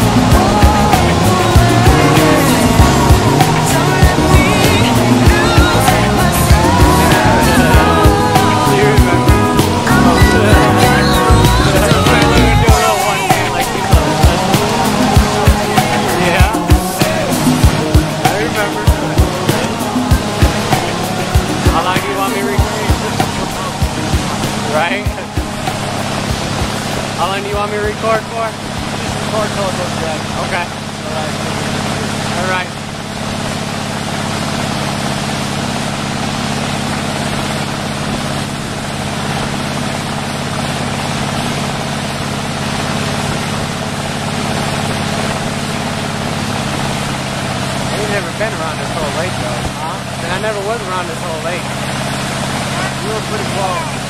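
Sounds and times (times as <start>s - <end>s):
boat engine running: 0.0s - 54.0s
wake water rushing: 0.0s - 54.0s.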